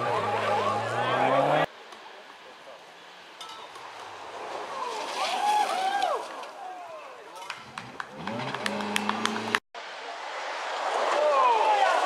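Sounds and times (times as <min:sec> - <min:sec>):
rally car engine revving: 0:00.0 - 0:01.7, 0:07.8 - 0:09.6.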